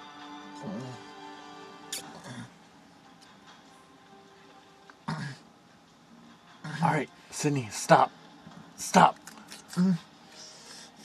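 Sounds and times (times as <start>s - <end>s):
person clearing throat: 5.1s - 5.4s.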